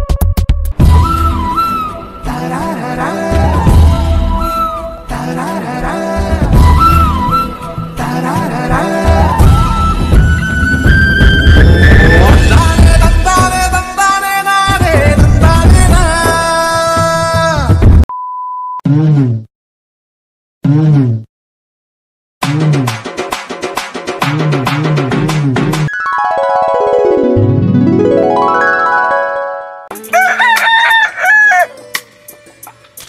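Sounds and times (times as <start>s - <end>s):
music: 0.0s - 18.0s, 22.4s - 33.0s
rooster crowing: 30.0s - 31.9s.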